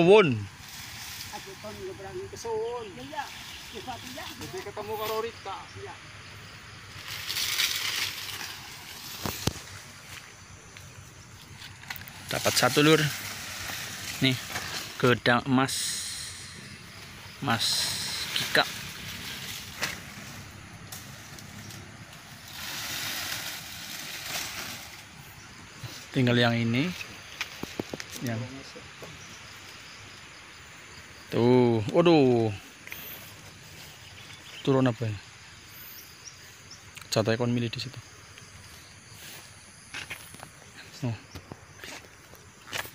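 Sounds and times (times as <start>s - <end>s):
rustling of dry leaves: 0.0s - 42.9s.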